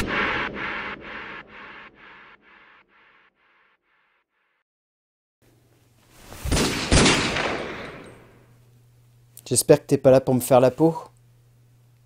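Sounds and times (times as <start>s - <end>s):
pistol shot with echo: 6.6s - 8.4s.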